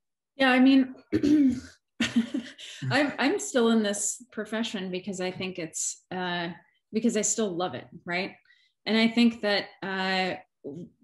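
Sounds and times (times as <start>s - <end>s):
woman clearing her throat: 1.1s - 1.8s
woman speaking haltingly: 2.4s - 4.1s.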